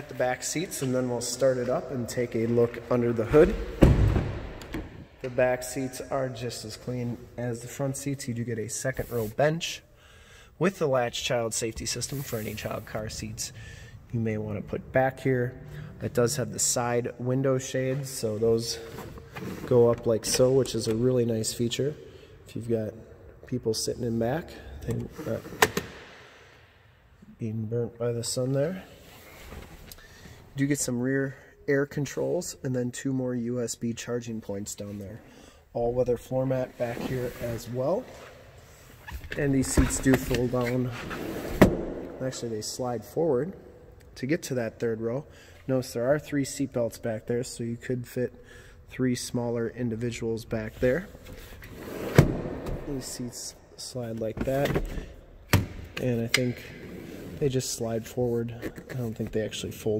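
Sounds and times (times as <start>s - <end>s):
seat sliding and rubbing: 11.9s - 13.2s, 36.6s - 38.4s.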